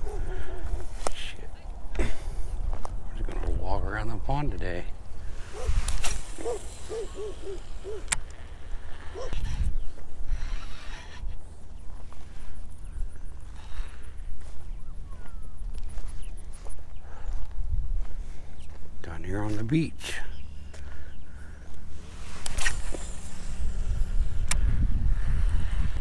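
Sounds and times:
wind rumbling on microphone: 0.0 - 19.0, 21.6 - 26.0.

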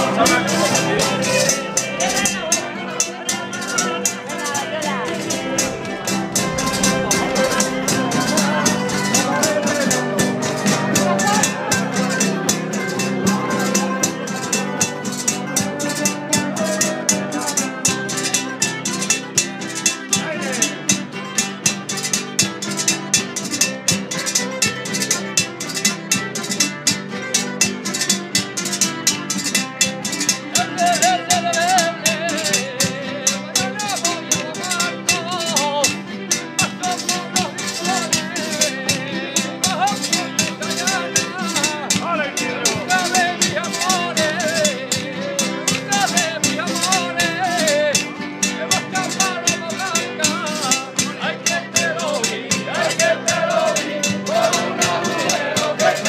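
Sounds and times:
men singing: 0.0 - 21.4, 30.1 - 56.0
strummed guitars and lutes: 0.0 - 56.0.

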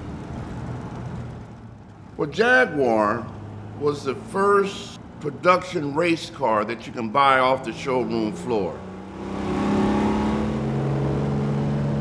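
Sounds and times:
car engine cruising: 0.0 - 12.0
road noise: 0.0 - 12.0.

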